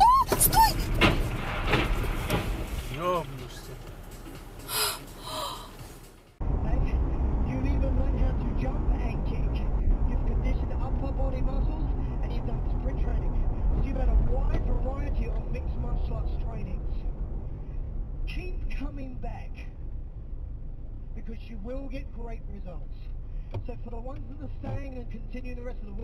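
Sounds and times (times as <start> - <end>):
car interior road rumble: 0.0 - 26.0
person gasping: 4.7 - 5.8.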